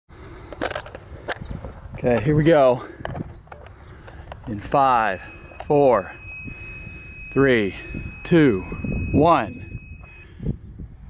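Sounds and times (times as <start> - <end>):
wind rumble on microphone: 0.9 - 4.7, 5.4 - 11.0.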